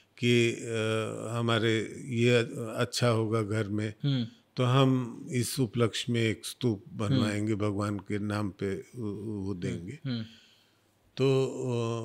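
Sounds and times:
man speaking: 0:00.2 - 0:10.3, 0:11.2 - 0:12.0.

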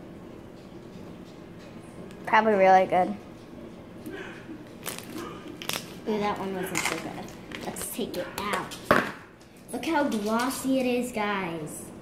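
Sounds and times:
slime squeezed crackling: 0:04.8 - 0:06.0.

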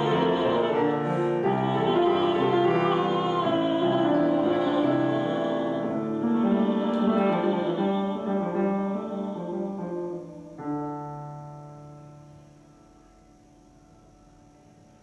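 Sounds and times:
grand piano playing: 0:00.0 - 0:15.0.

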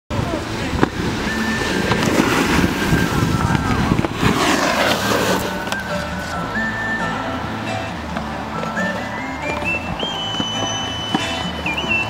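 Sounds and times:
snowboards scraping on snow: 0:00.6 - 0:06.9.

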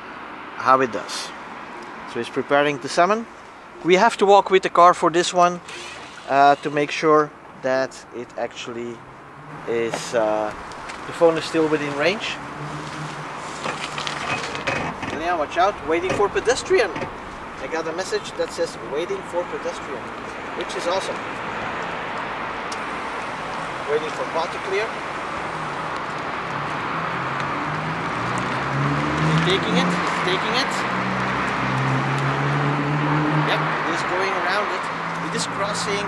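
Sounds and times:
tyres rolling on asphalt: 0:00.0 - 0:36.0
footsteps crunching on asphalt: 0:09.9 - 0:14.6, 0:20.0 - 0:24.2.

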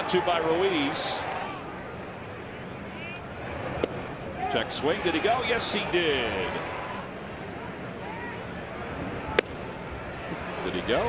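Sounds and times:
crowd murmur: 0:06.4 - 0:11.0
baseball popping into leather mitt: 0:09.4 - 0:09.6.

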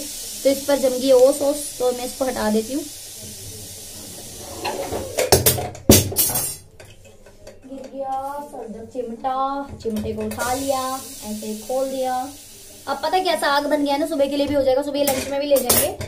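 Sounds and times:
low steady hiss: 0:00.0 - 0:14.4
metal cookware clanking: 0:04.6 - 0:07.2.

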